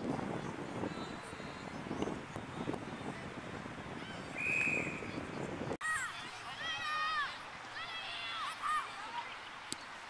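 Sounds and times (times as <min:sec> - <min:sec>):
whistle blast: 0:04.4 - 0:05.1.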